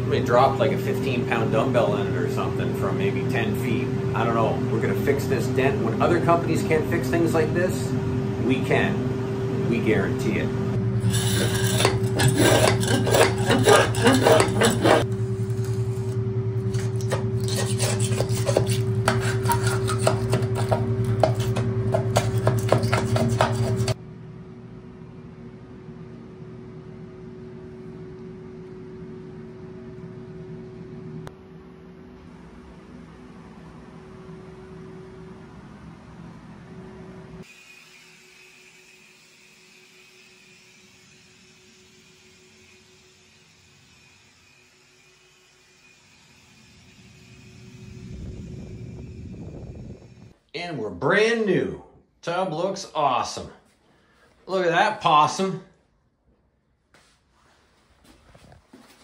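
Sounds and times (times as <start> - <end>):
steady mechanical hum: 0.0 - 59.0
scraper blade rasping caulk: 11.0 - 15.1, 16.0 - 24.0.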